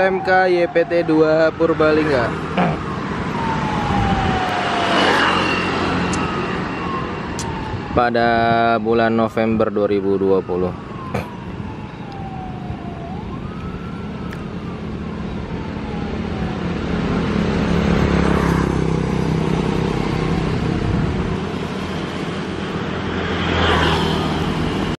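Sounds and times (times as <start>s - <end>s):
road traffic passing: 0.0s - 24.9s
motorcycle passing close: 1.9s - 7.6s, 16.4s - 24.9s.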